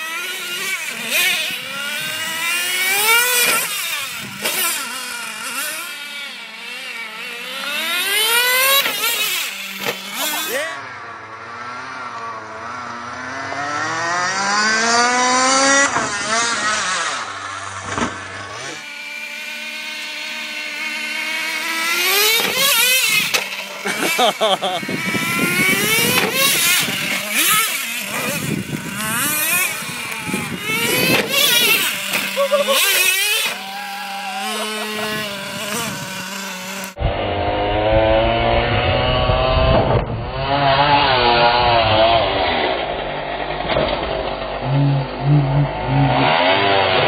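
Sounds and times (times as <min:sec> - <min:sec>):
small engine revving: 0:00.0 - 0:47.0.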